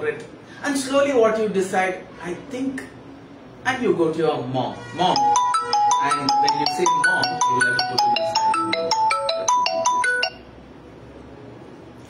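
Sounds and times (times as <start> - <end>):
phone ringtone chiming melody: 5.1 - 10.5.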